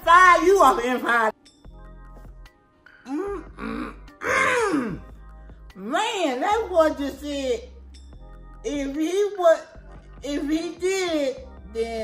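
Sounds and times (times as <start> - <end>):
faint background music: 0.0 - 12.0
man crying out: 3.3 - 5.0.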